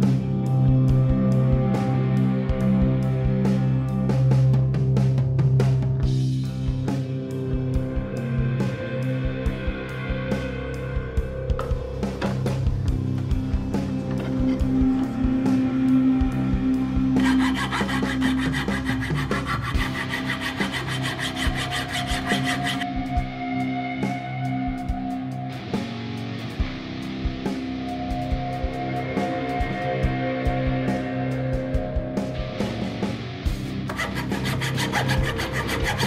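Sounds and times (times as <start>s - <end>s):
background music: 0.0s - 36.0s
hand saw cutting wood: 17.2s - 22.8s, 33.9s - 36.0s.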